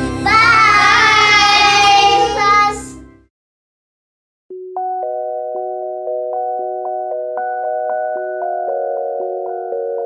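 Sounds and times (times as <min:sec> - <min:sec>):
children singing: 0:00.2 - 0:03.0.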